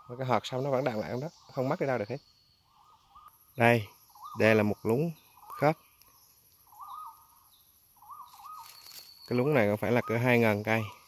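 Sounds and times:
bird warbling calls: 0.0 - 11.0.

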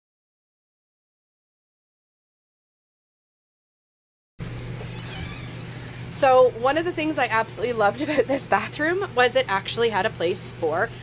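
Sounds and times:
low hum with faint hiss: 4.4 - 11.0.

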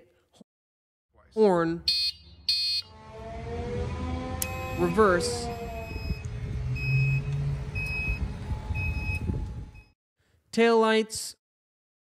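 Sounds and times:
high buzzy horn beeps: 1.8 - 9.9
low hum: 2.8 - 9.9.

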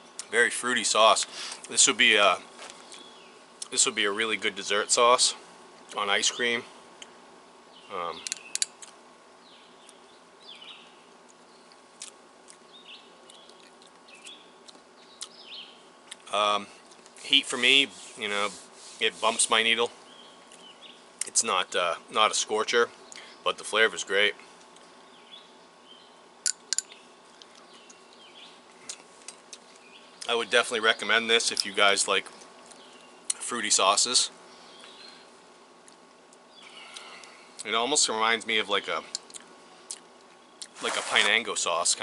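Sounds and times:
faint outdoor hiss: 0.0 - 42.0
small birds chirping: 0.0 - 42.0
sharp clicks: 8.2 - 9.0
faint bird chirps: 36.4 - 37.7.

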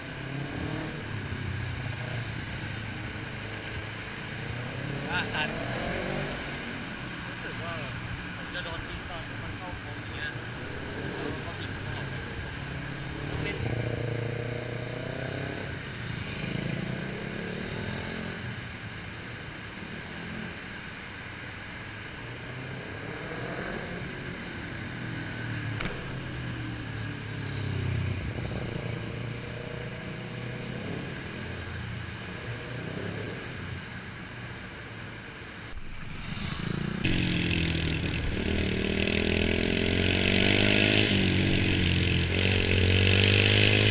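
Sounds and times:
motorcycles passing: 0.0 - 18.9, 19.7 - 43.9.

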